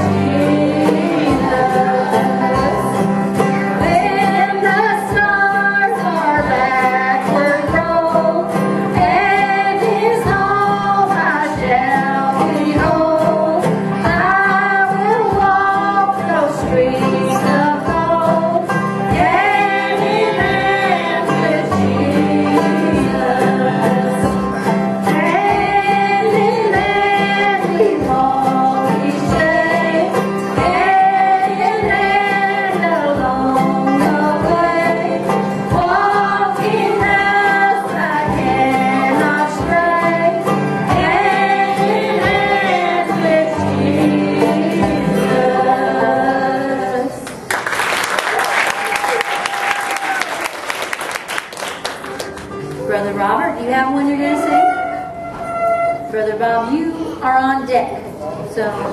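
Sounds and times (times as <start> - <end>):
women singing in harmony: 0.0 - 47.4
upright bass: 0.0 - 47.5
acoustic guitar: 0.0 - 58.9
applause: 47.3 - 52.9.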